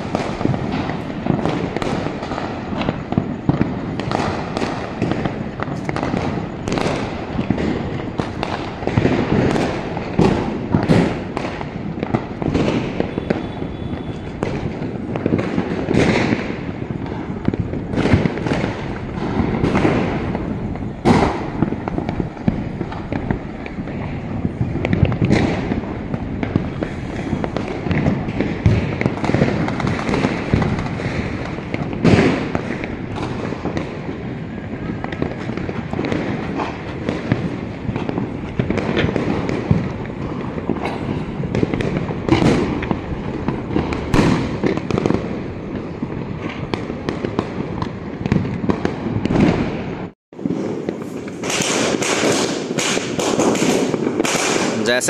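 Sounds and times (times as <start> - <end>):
firecrackers crackling and banging: 0.0 - 55.0.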